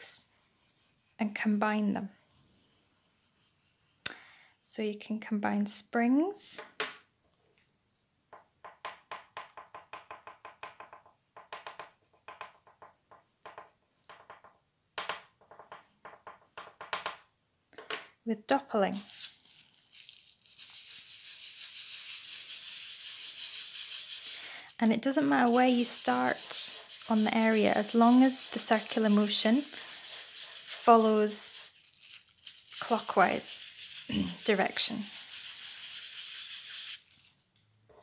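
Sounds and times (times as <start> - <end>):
oil pastel rubbing on paper: 0.0 - 4.0, 18.9 - 37.4.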